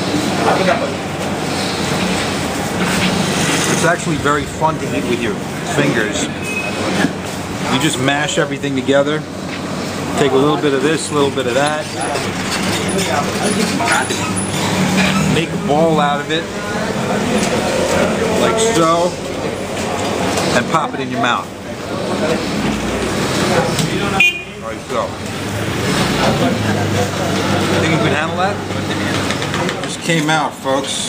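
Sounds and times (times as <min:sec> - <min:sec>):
background voices talking: 0:00.0 - 0:31.0
vehicle engine droning: 0:00.0 - 0:31.0.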